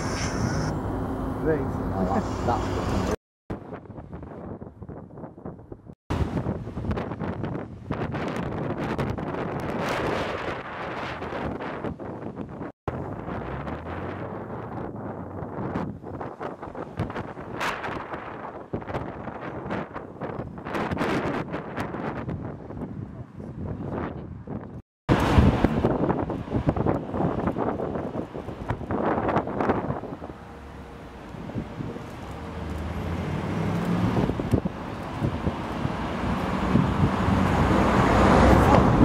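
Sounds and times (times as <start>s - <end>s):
wind buffeting microphone: 3.5s - 39.0s
cars driving past: 28.5s - 39.0s.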